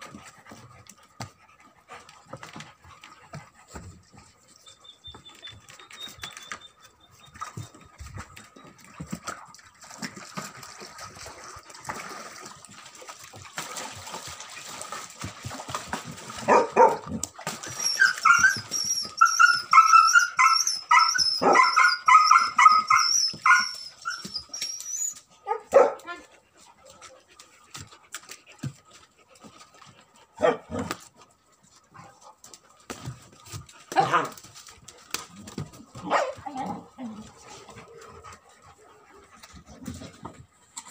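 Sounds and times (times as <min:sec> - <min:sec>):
puppies barking and yelping: 0:16.4 - 0:26.0.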